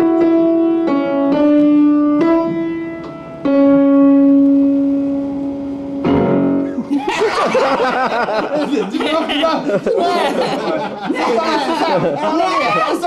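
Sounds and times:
slow piano notes: 0:00.0 - 0:08.2.

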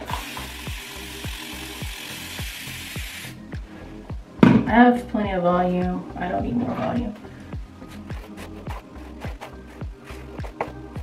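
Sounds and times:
spray bottle hissing: 0:00.0 - 0:03.4.

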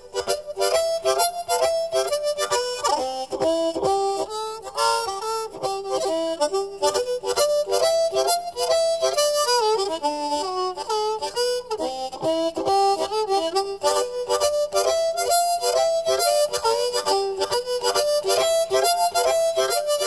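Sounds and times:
harmonica playing blues: 0:00.0 - 0:20.0.

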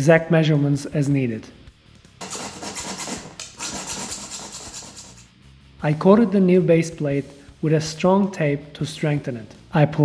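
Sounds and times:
hacksaw cutting plastic: 0:02.2 - 0:05.2.

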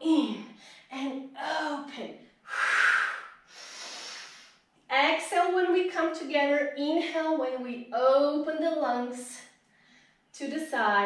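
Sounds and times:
woman breathing hard: 0:02.5 - 0:04.5.

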